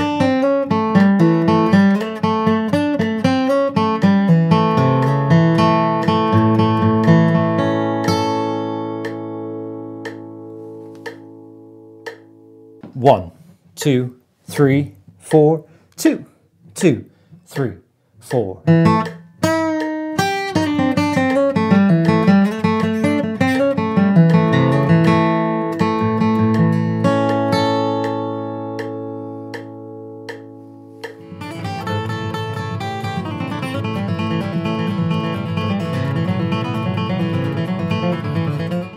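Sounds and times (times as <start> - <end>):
metronome clicks: 0.0 - 12.8, 17.5 - 38.9
strummed guitar music: 0.0 - 13.1, 18.2 - 38.9
acoustic guitar flatpicking lead: 0.0 - 13.7, 18.2 - 38.9.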